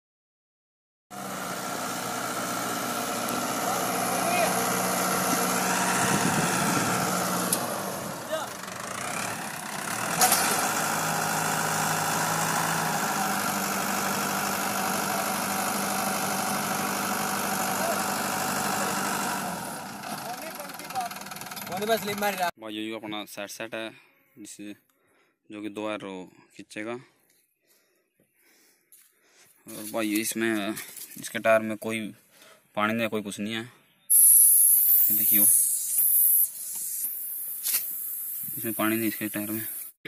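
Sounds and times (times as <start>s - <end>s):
tractor diesel engine running: 1.1s - 22.5s
sharp click: 35.8s - 37.9s.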